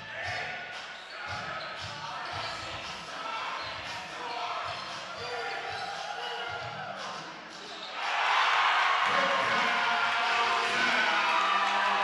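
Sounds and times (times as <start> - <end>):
chatter of people: 0.0 - 8.0.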